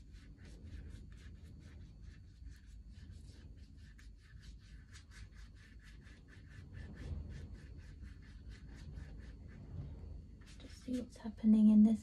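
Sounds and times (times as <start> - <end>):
brush stroking across paper: 0.0 - 11.5.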